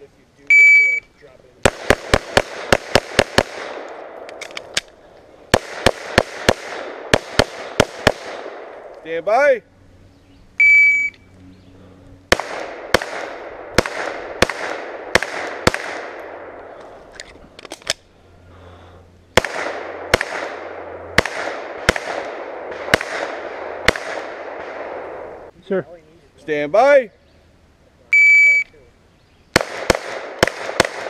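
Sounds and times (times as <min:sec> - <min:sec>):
pistol shots with echo: 0:01.6 - 0:04.6, 0:05.5 - 0:08.9, 0:12.3 - 0:16.6, 0:19.4 - 0:25.3, 0:29.5 - 0:31.0.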